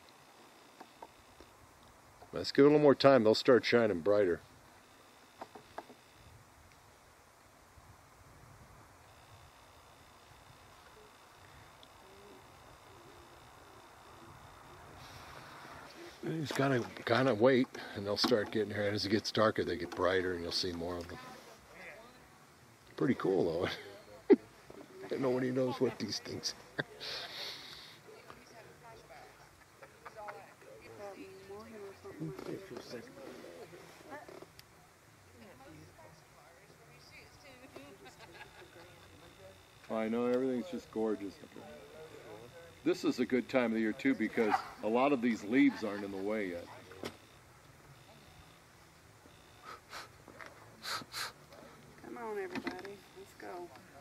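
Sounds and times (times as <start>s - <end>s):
low steady hum: 0.0s - 54.0s
steady low hiss: 0.0s - 54.0s
indistinct talk of people: 10.8s - 54.0s.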